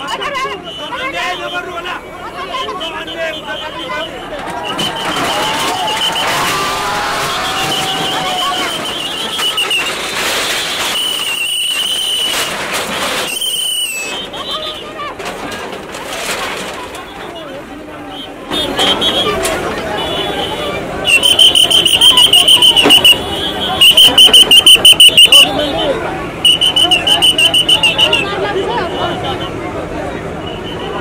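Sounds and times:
metal crashing and clattering: 4.4 - 17.6
fast electronic warning beeps: 21.1 - 23.2, 23.8 - 25.6.

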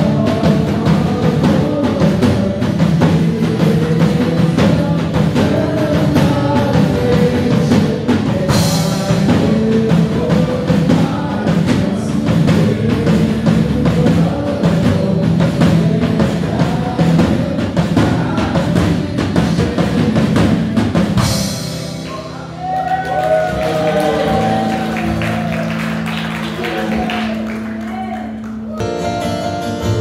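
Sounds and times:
people singing: 0.0 - 22.4, 23.3 - 27.5
bass drum and snare beat: 0.0 - 29.2
worship band playing: 0.0 - 30.0.

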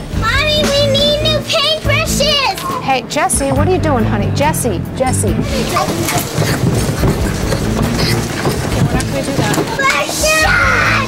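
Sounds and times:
faint voices: 5.1 - 11.0
shopping cart rattling: 5.1 - 11.0.

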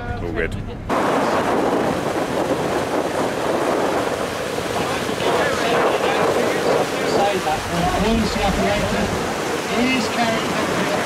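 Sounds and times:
boat wake rushing: 0.8 - 11.0
wind buffeting microphone: 0.8 - 11.0.

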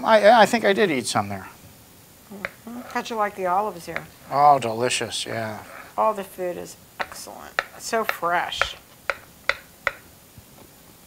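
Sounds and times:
knife cutting on plastic board: 3.9 - 4.4.

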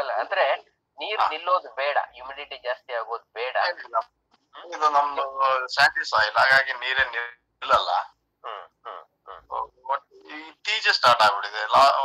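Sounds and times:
broken voice over video call: 0.0 - 12.0.

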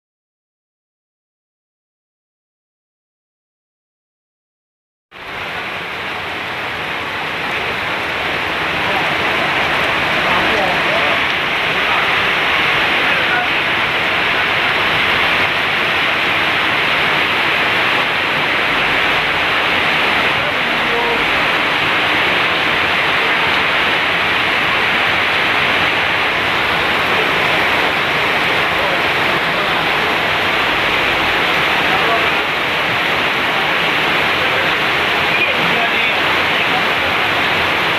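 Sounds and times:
heavy rain pouring: 5.1 - 37.9.

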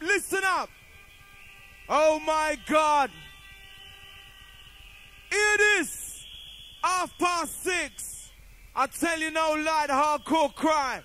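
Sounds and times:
faint steady hum: 0.0 - 11.0
mc shouting through sound system: 0.0 - 11.0.

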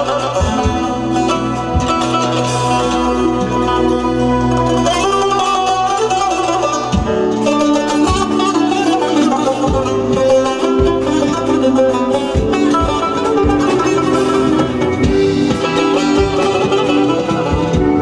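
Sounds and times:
plucked lute melody: 0.0 - 18.0.

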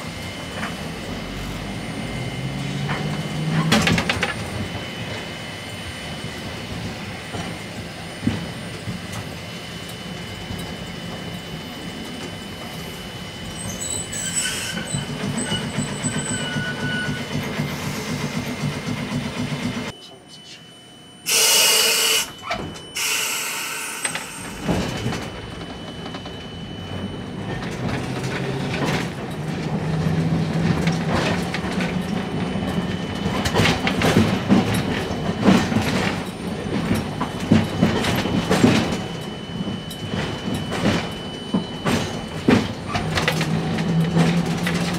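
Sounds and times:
wheel noise on rails: 0.0 - 20.6, 21.2 - 44.9
streetcar motor hum: 0.0 - 44.9
wheels clattering over rail joints: 27.4 - 44.9.

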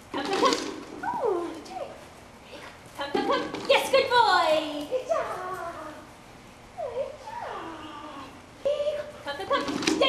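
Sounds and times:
dog whining: 6.8 - 9.1.

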